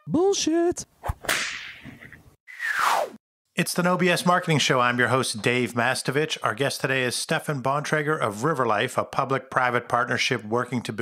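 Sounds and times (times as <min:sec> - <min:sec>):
whip crack: 0:01.0 - 0:02.0
whoosh: 0:02.5 - 0:03.2
whoosh with falling pitch: 0:02.5 - 0:03.2.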